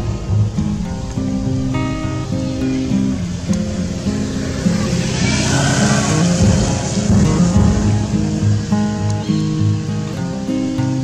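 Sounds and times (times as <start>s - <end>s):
acoustic guitar music: 0.0s - 11.0s
rushing noise: 0.0s - 11.0s.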